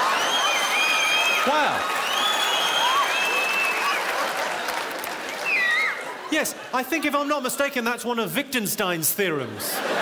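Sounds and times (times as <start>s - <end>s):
audience applauding: 0.0s - 6.3s
audience laughing: 9.4s - 10.0s.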